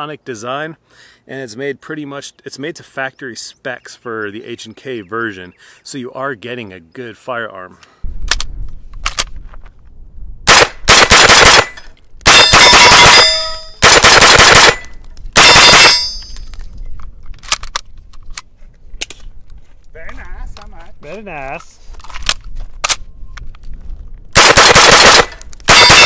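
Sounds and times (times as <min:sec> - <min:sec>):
pistol firing rapidly: 0:10.5 - 0:11.7, 0:12.3 - 0:14.8, 0:24.4 - 0:26.0
metallic ringing of steel targets: 0:11.6 - 0:13.8, 0:14.7 - 0:16.8.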